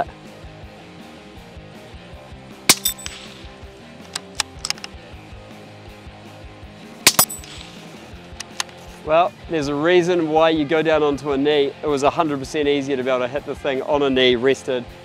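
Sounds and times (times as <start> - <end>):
background music: 0.0 - 15.0
suppressed rifle shots: 2.7 - 4.9, 7.0 - 8.7
rifle bolt clicks: 2.7 - 5.0, 7.1 - 7.8, 8.4 - 8.8.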